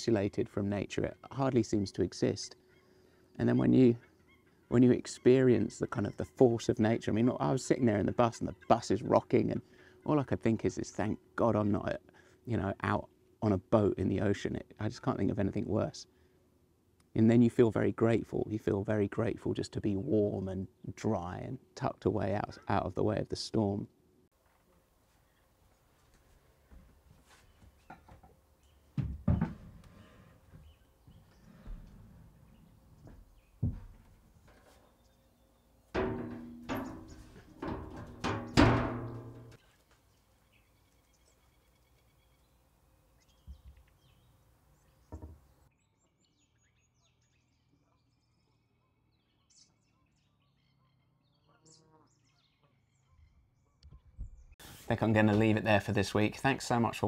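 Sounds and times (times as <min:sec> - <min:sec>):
ringing knocks: 0:36.0 - 0:39.6.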